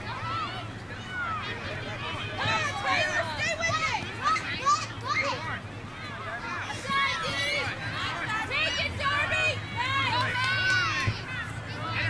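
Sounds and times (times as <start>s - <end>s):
children shouting: 0.0s - 1.6s, 2.4s - 5.6s, 6.3s - 12.0s.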